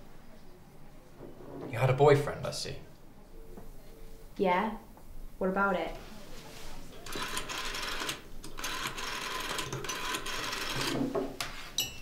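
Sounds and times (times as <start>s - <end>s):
rotary telephone bell ringing: 7.1s - 11.0s.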